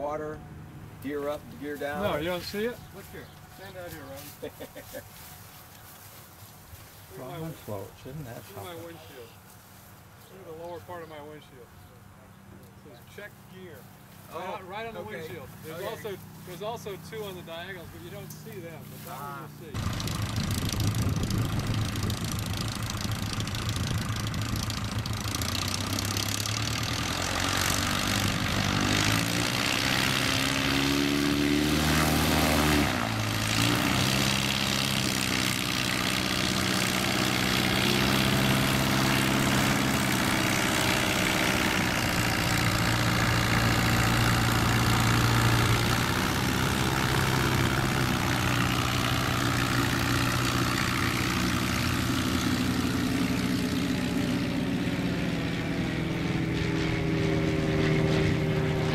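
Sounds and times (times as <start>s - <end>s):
light plane engine and propeller: 0.0s - 58.9s.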